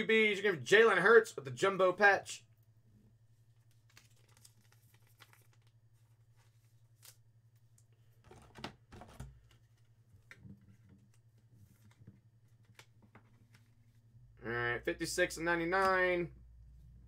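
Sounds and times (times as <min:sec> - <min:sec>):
low steady hum: 0:00.0 - 0:17.0.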